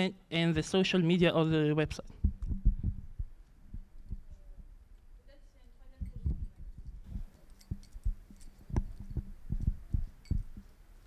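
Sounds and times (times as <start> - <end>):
microphone handling thuds: 1.8 - 4.4.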